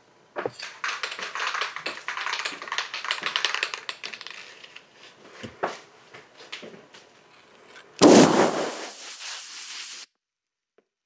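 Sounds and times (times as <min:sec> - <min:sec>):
spray paint can rattling: 0:00.6 - 0:04.8.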